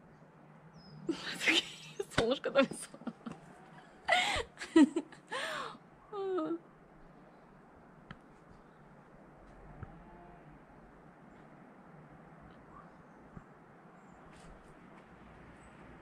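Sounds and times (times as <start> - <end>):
faint outdoor hiss: 0.0 - 16.0
woman laughing and vocalizing: 1.1 - 3.4, 4.0 - 6.6.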